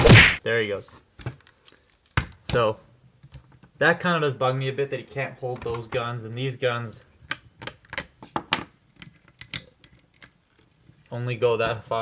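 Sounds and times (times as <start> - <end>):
hard plastic clicking and tapping: 7.2 - 10.7.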